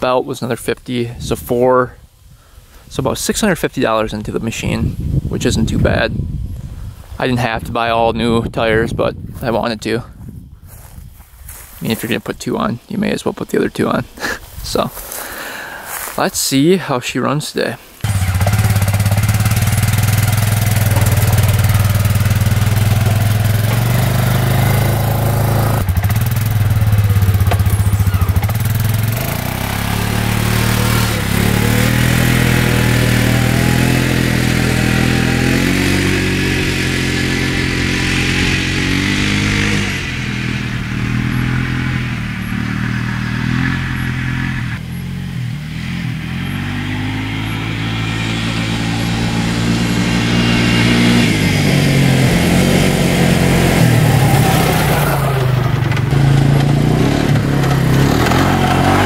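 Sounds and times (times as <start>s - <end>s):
quad bike engine revving: 18.0s - 59.0s.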